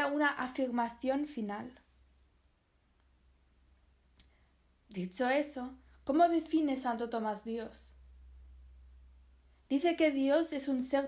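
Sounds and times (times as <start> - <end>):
woman speaking: 0.0 - 1.9, 4.9 - 8.0, 9.7 - 11.0.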